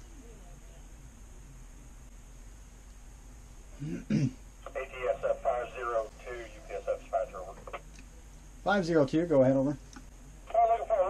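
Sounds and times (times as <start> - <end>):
man talking over two-way radio: 4.6 - 7.8, 10.5 - 11.0.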